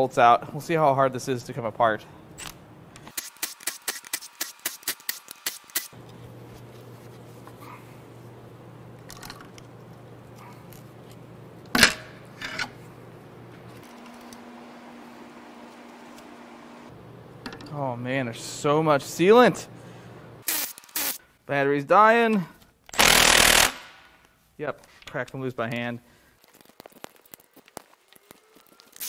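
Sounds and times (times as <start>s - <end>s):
steady low hum: 6.0s - 20.5s.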